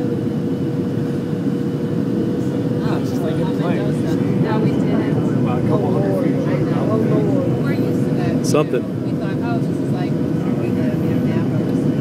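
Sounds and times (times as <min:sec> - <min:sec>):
airliner cabin engine roar: 0:00.0 - 0:12.0.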